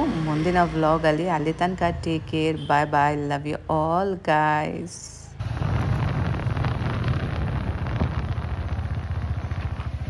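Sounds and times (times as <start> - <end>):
motorcycle engine running: 5.4 - 10.0
wind on microphone: 5.4 - 10.0.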